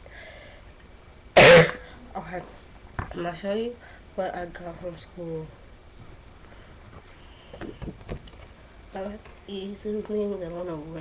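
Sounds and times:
girl coughing: 1.4s - 1.9s.

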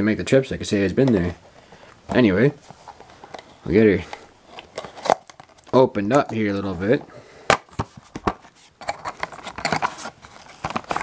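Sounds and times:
cardboard and plastic rustling: 1.2s - 11.0s.

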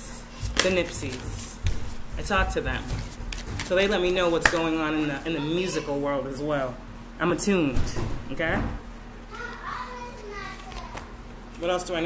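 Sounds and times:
steady low hum: 0.0s - 12.0s
child talking faintly: 9.3s - 11.2s.

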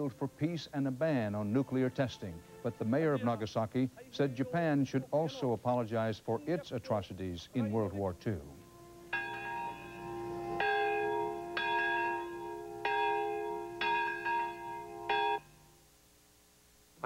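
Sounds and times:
large bell ringing: 8.2s - 15.5s.

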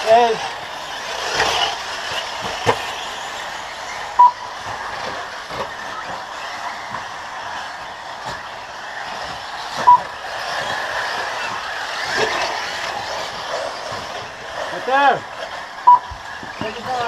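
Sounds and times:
toy cars whirring: 0.0s - 17.0s
short electronic beeps: 4.2s - 4.4s, 9.8s - 10.1s.

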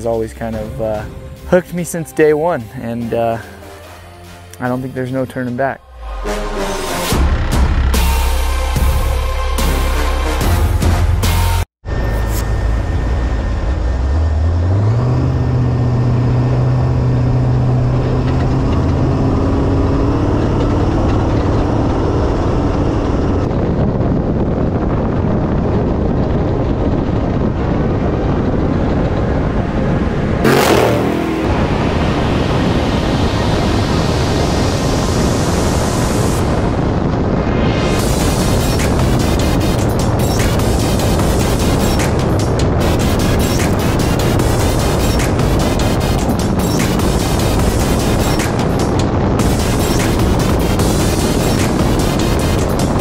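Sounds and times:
heavy wind noise: 11.8s - 53.0s
race truck engine: 11.8s - 53.0s
loud rush: 29.8s - 53.0s.

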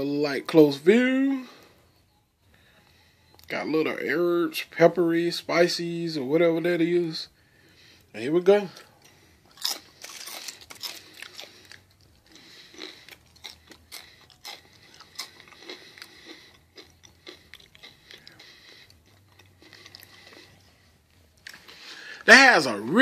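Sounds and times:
crunching potato chips: 8.5s - 23.0s.

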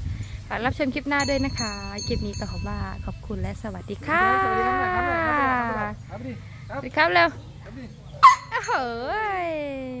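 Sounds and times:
elephant calling: 7.9s - 9.3s.

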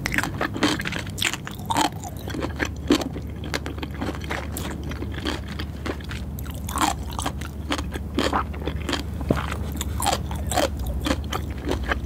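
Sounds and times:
chewing with mouth clicks: 0.0s - 12.0s.

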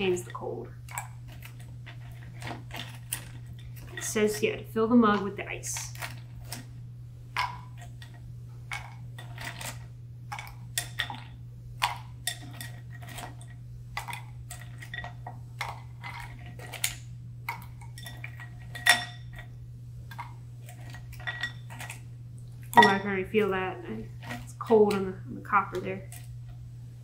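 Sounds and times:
steady low hum: 0.0s - 27.0s
ice cubes clinking into metal mug: 22.8s - 23.2s.

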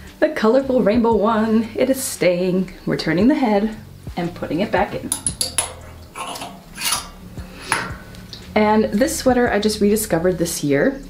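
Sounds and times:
clothes hangers scraping on metal rail: 5.1s - 8.0s.

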